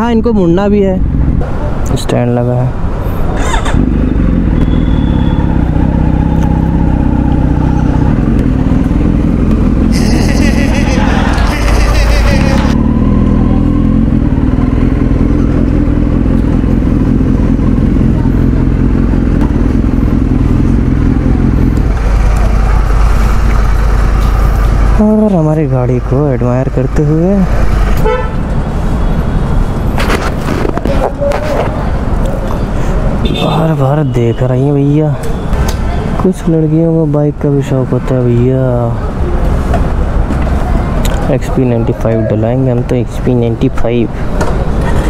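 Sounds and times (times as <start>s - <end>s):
motorcycle engine idling: 12.3s - 25.2s.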